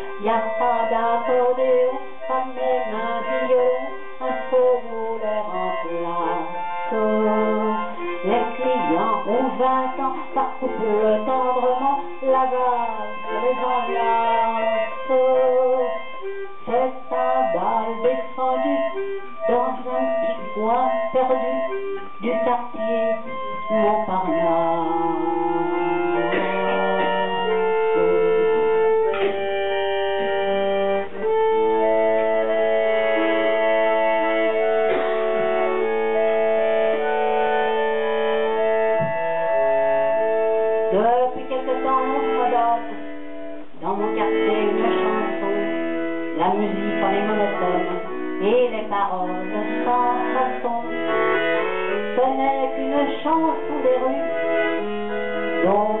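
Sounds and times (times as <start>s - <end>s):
accordion playing: 0.0s - 56.0s.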